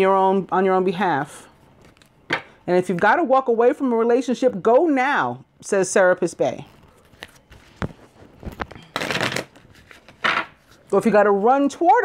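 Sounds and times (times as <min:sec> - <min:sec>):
cards being shuffled: 0:06.6 - 0:10.9.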